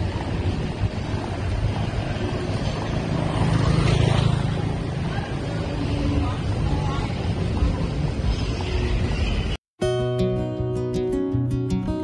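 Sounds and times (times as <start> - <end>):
motorbike riding past: 0.0 - 6.4.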